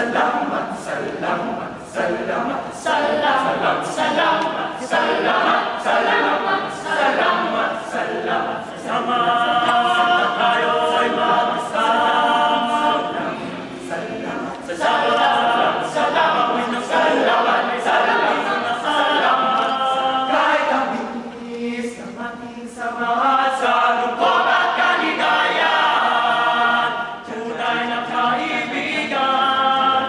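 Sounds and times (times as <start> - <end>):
boys choir singing a cappella: 0.0 - 30.0.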